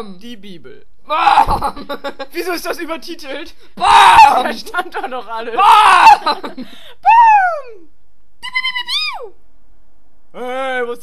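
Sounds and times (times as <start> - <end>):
high-pitched vocal cry: 3.8 - 4.6, 5.6 - 6.4.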